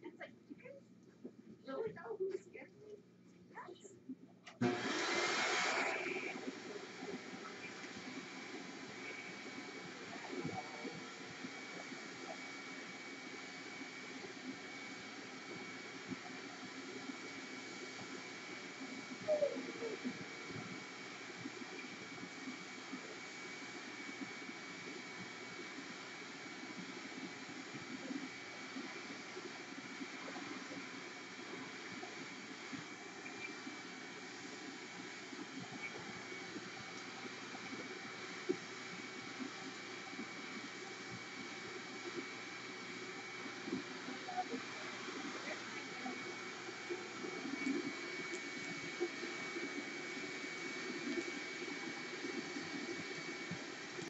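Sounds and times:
faint high whine: 3.6 - 54.0.

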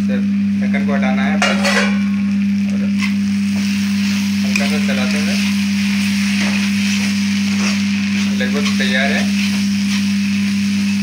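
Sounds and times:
steady low hum: 0.0 - 11.0
food sizzling in a pan: 1.1 - 11.0
spatula stirring: 4.0 - 11.0.

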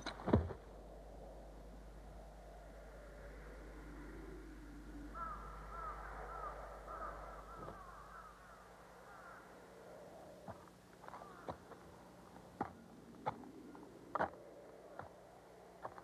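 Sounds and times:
low hum and hiss: 0.0 - 16.0
crow cawing: 3.9 - 12.0.

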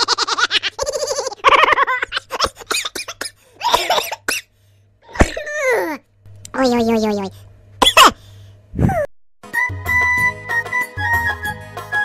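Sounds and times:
cough-like burst: 2.7 - 4.5, 5.1 - 5.7, 7.8 - 8.2
comic vocal sound effects: 6.5 - 7.4.

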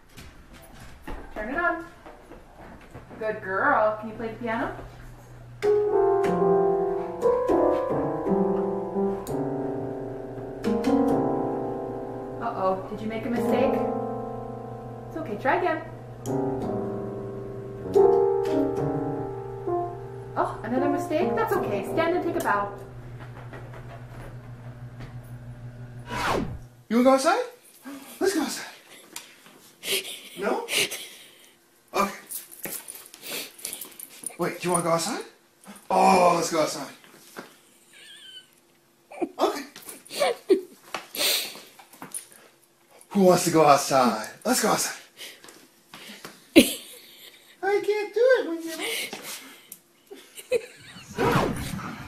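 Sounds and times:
steady low hum: 3.8 - 26.9
electronic organ notes: 5.4 - 26.0.

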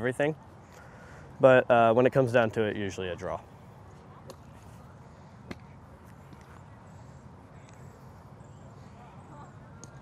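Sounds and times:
low outdoor background: 0.0 - 10.0.

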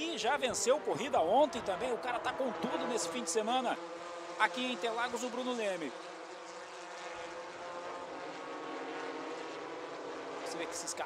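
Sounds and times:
race car engines at speed: 0.0 - 11.0
road and tyre noise: 0.0 - 11.0.

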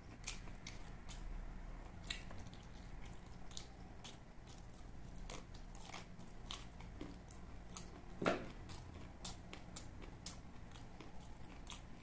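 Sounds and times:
faint low hum: 0.0 - 12.0
man chewing food: 0.0 - 12.0.

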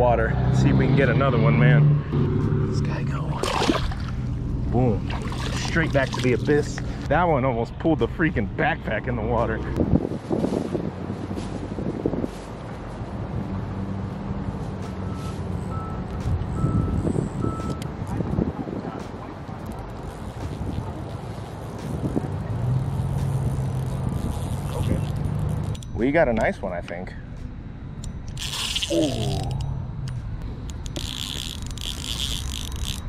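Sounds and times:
vehicle engine humming: 0.0 - 33.0.

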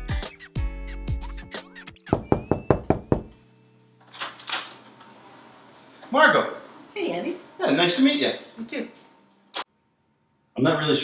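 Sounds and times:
background music: 0.0 - 4.7
knocks on wooden door: 2.1 - 3.3.

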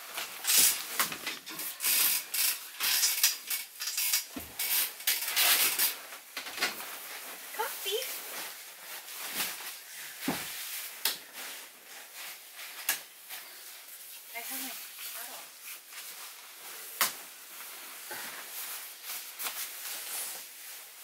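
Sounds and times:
rustling on sleeping bag: 5.8 - 21.0.

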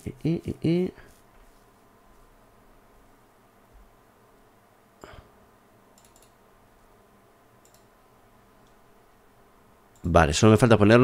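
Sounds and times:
faint computer clicks: 5.9 - 6.4, 7.6 - 8.0.

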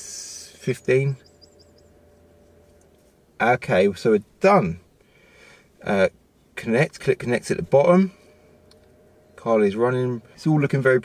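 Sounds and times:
small bird chirping: 0.3 - 3.1.

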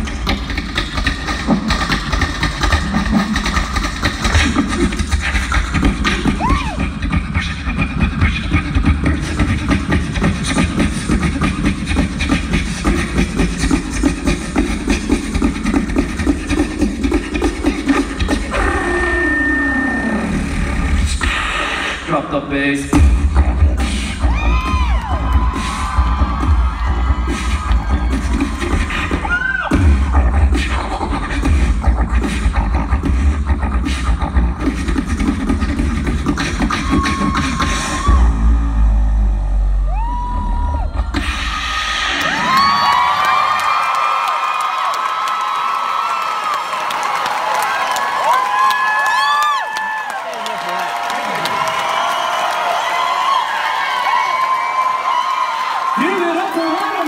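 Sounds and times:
beatboxing drum sounds: 0.0 - 44.6
crowd cheering and whooping: 6.0 - 7.0, 18.5 - 20.6, 24.0 - 30.4, 36.4 - 57.0.

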